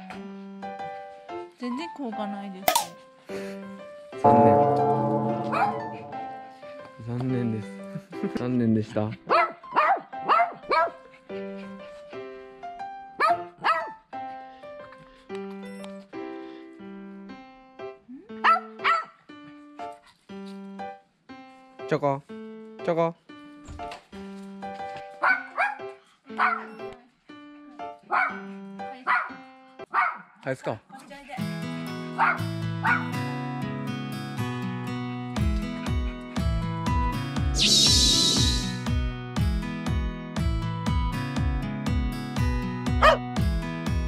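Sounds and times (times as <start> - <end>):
keyboard background music: 0.0 - 30.3, 31.4 - 44.0
small dog barking: 9.3 - 11.0, 13.2 - 14.0, 18.4 - 19.2, 25.2 - 26.9, 28.1 - 30.4, 32.2 - 33.1, 43.0 - 43.2.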